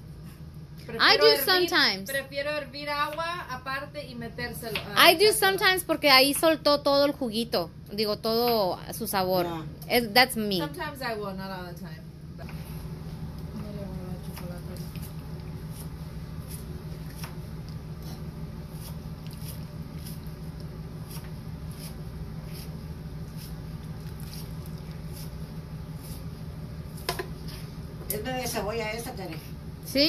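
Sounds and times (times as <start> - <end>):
steady low hum: 0.0 - 30.0
person speaking: 0.9 - 2.1
wet squishes: 23.7 - 25.4.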